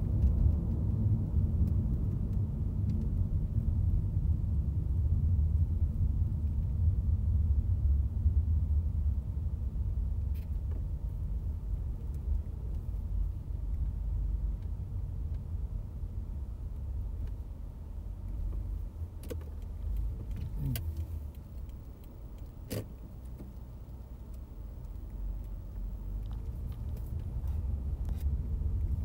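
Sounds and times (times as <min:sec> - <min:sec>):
road rumble inside car: 0:00.0 - 0:29.0.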